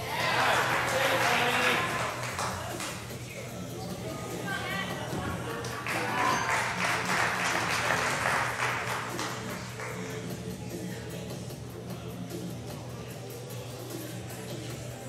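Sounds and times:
crowd shouting and cheering: 0.0s - 2.8s, 3.9s - 10.0s
background music: 0.0s - 15.0s.

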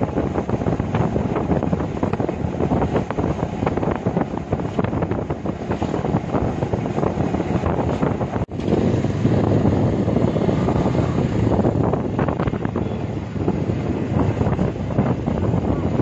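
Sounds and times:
road noise: 0.0s - 16.0s
wind buffeting microphone: 0.0s - 16.0s.

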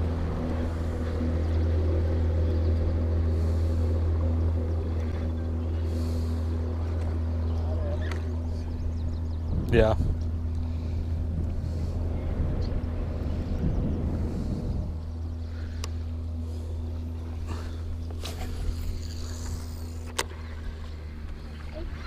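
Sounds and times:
boat motor humming: 0.0s - 22.0s.

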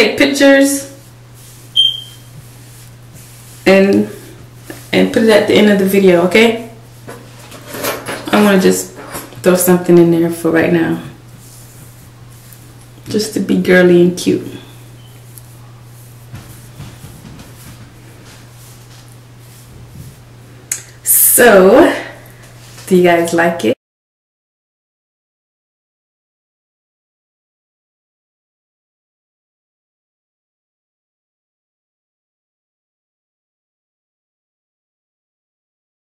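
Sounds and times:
steady low hum: 0.0s - 23.8s
fingers rustling through hair: 0.1s - 21.7s
short high-pitched ping: 1.8s - 2.2s.

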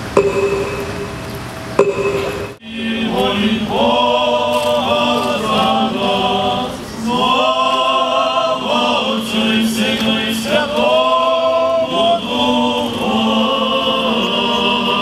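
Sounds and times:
men chanting together: 2.6s - 15.0s.

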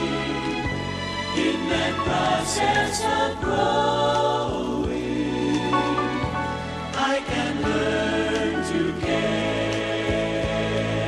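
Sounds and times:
gospel group singing: 0.0s - 11.0s
steady bass line: 0.0s - 11.0s.

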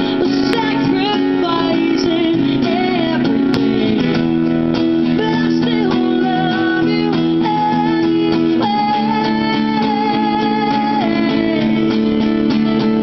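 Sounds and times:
two acoustic guitars playing: 0.0s - 13.0s.

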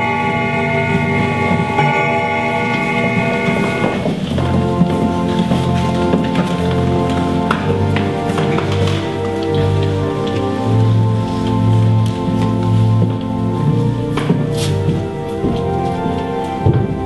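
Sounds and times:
people shuffling: 0.0s - 17.0s
slow organ music: 0.0s - 17.0s
knocks of wooden chairs: 12.2s - 17.0s.

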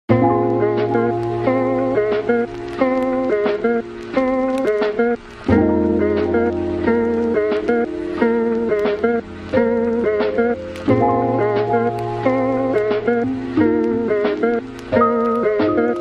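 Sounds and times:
plucked guitar music: 0.1s - 16.0s.

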